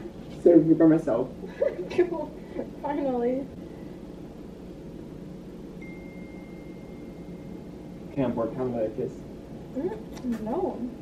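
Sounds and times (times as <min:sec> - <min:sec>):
steady low hum: 0:00.0 - 0:11.0
faint high steady tone: 0:05.7 - 0:08.9.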